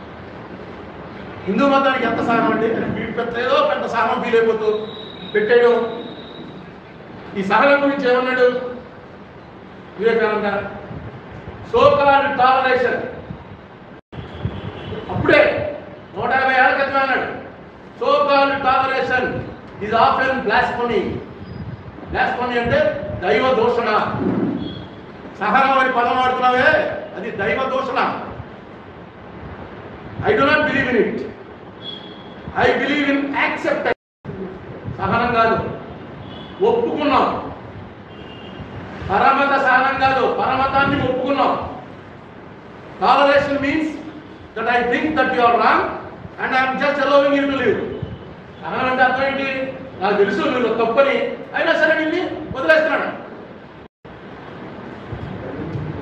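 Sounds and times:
microphone hiss: 0:00.0 - 0:56.0
man speaking: 0:01.4 - 0:06.1.

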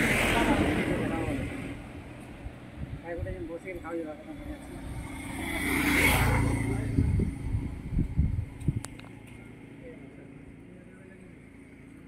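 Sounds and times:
motor vehicle passing by: 0:00.0 - 0:02.1, 0:04.0 - 0:12.0.

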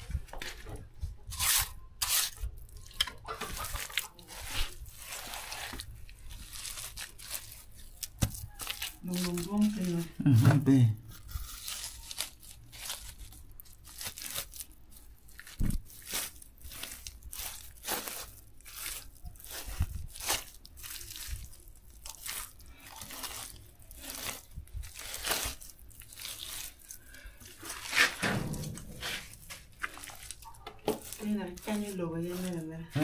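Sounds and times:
hands crunching and scraping soil: 0:00.0 - 0:33.0.

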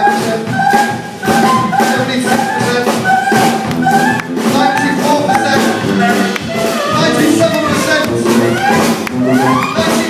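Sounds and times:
brass band playing: 0:00.0 - 0:10.0
steady drum beat: 0:00.0 - 0:10.0.

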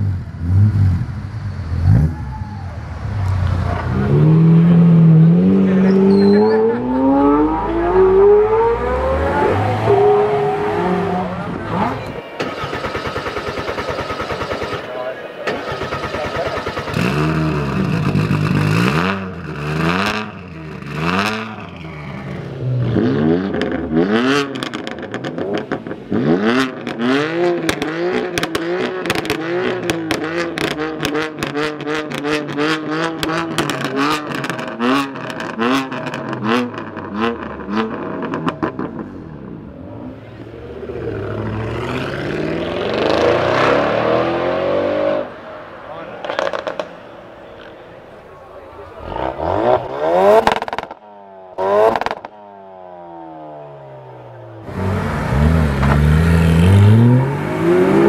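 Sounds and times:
sports car engine pulling away: 0:02.9 - 0:12.7, 0:15.7 - 0:48.2, 0:48.8 - 0:58.0
car engine revving in blips: 0:03.3 - 0:14.8, 0:15.5 - 0:45.4, 0:46.1 - 0:47.9, 0:48.8 - 0:58.0
exhaust pops: 0:27.6 - 0:32.2.

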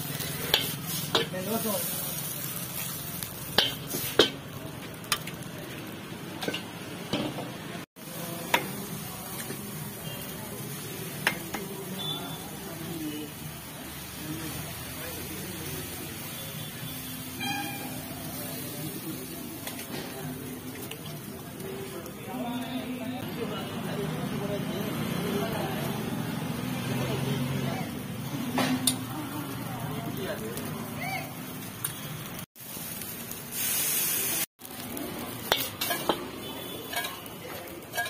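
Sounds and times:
hot griddle hissing: 0:00.0 - 0:06.6, 0:08.0 - 0:38.0
noodles sizzling in a wok: 0:00.0 - 0:38.0.

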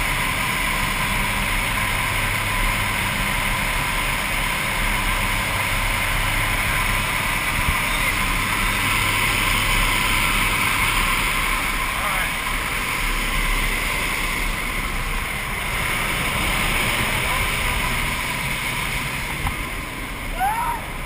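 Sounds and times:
plane engine and propeller drone: 0:00.0 - 0:21.0.

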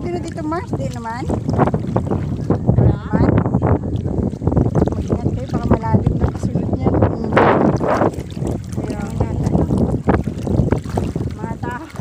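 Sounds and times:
water sloshing around wading legs: 0:00.0 - 0:12.0
water splash: 0:00.0 - 0:12.0
wind buffeting microphone: 0:00.0 - 0:12.0.

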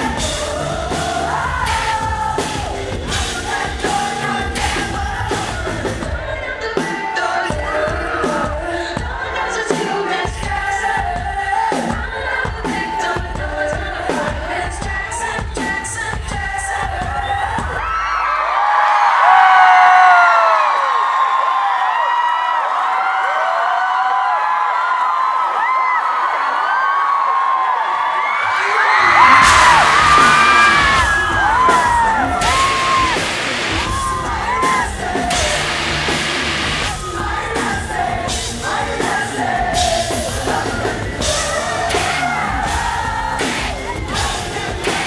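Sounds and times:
crowd yelling: 0:00.0 - 0:10.2, 0:16.7 - 0:45.0
live rock band: 0:00.0 - 0:18.0, 0:28.8 - 0:45.0
drums and bass: 0:00.0 - 0:18.3, 0:28.8 - 0:45.0
crowd singing and cheering: 0:00.0 - 0:45.0.

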